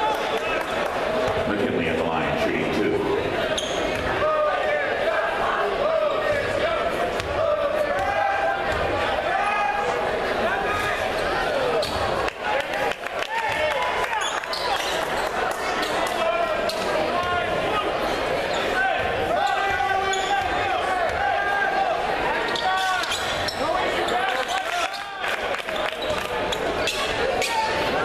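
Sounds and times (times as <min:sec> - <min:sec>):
voices echoing in gym: 0:00.0 - 0:28.0.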